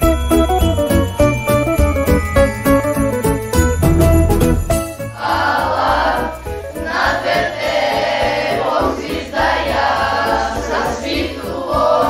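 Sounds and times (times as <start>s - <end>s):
musical accompaniment: 0.0s - 12.0s
choir singing a carol: 5.1s - 12.0s.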